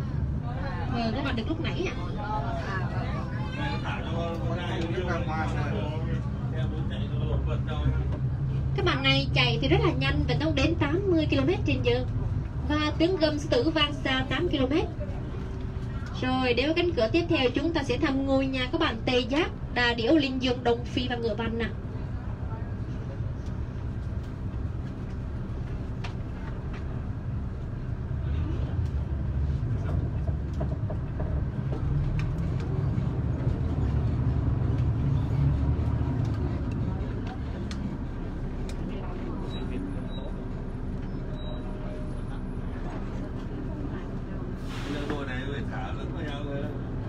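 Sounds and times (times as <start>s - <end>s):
bus engine and road rumble: 0.0s - 47.0s.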